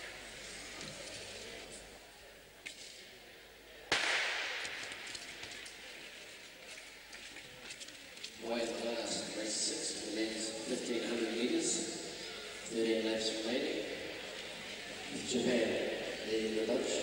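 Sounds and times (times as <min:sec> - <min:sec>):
crowd noise: 0:00.0 - 0:17.0
starter's pistol crack: 0:03.9 - 0:05.3.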